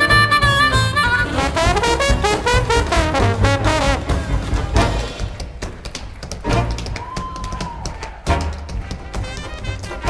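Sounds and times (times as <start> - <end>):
swing band playing: 0.0 - 7.0, 8.2 - 10.0
walking double bass: 0.0 - 7.0, 8.3 - 10.0
tap-dance steps clicking: 1.7 - 10.0.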